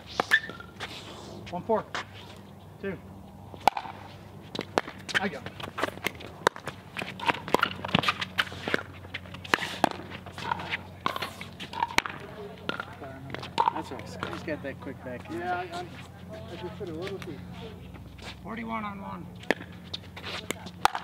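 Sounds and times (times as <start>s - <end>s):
ball bouncing on hard court: 3.6s - 4.0s, 5.7s - 14.4s
paddles hitting plastic ball: 3.6s - 4.0s, 4.6s - 14.4s, 20.5s - 21.0s
shoes scuffing on court: 3.9s - 11.9s, 19.4s - 20.8s.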